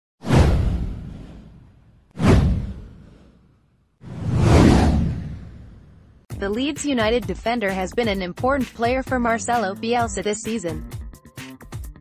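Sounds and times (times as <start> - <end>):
whoosh sound effect: 0.2 - 3.4, 4.0 - 6.1
deep low boom: 0.3 - 3.3.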